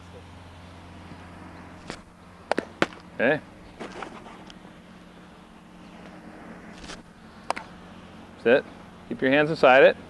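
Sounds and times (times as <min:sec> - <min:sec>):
faint steady hum: 0:00.0 - 0:10.0
baseball bat crack: 0:01.8 - 0:03.1, 0:06.8 - 0:07.8.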